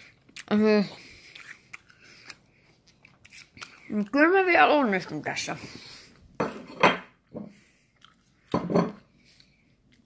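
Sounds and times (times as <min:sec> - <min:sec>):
dishes and cutlery clattering: 0:06.4 - 0:07.2, 0:08.5 - 0:09.0.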